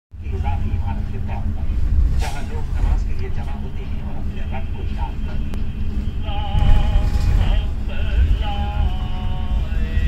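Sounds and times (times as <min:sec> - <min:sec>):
train carriage rumbling: 0:00.1 - 0:10.0
indistinct voices: 0:00.2 - 0:10.0.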